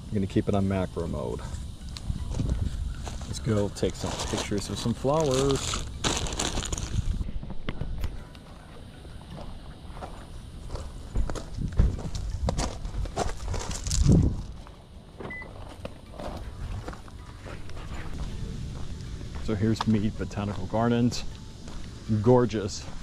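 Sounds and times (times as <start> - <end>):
footsteps on gravel: 1.9 - 7.7, 9.2 - 14.8, 15.5 - 23.0
bag and gear rustling: 2.6 - 7.3.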